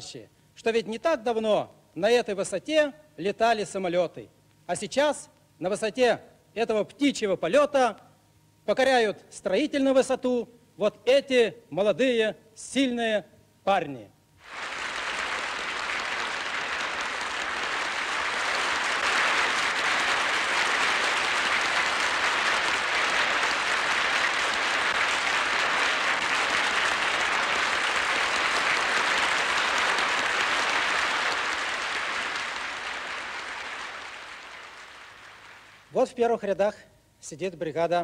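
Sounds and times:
audience applauding: 14.4s - 35.9s.

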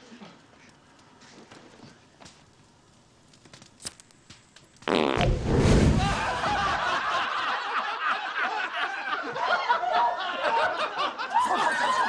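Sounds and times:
long loud fart: 4.8s - 6.7s
group of people laughing: 6.0s - 12.0s.

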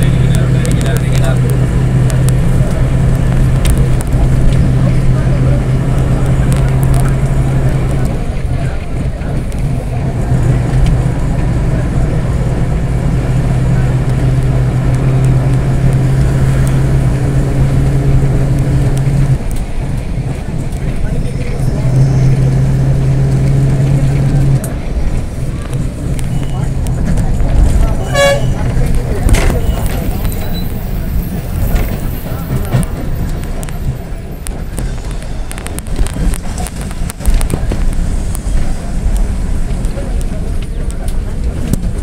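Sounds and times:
road and wind noise: 0.0s - 42.0s
vehicle engine drone: 0.0s - 42.0s
short horn toot: 27.9s - 28.8s.

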